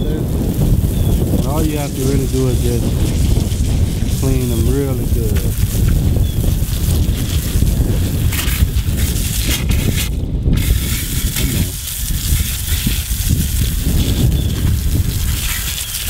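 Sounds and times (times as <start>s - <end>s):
hose spraying water on concrete: 0.0s - 16.0s
wind rumble on microphone: 0.0s - 16.0s.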